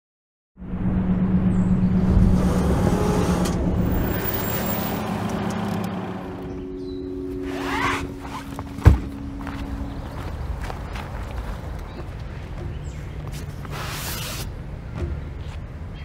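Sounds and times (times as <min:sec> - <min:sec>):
car engine and road noise: 0:00.6 - 0:16.0.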